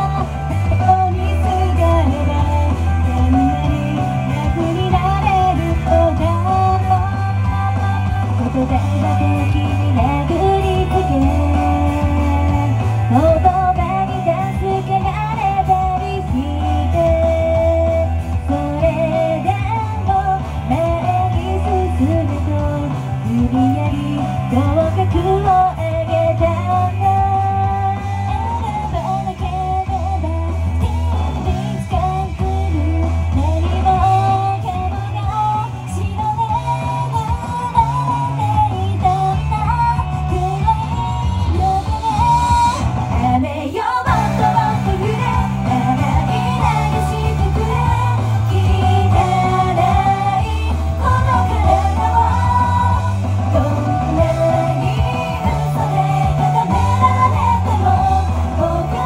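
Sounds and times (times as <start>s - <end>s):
pop-rock song with electric guitar: 0.0s - 59.0s
woman singing into a microphone: 0.0s - 59.0s.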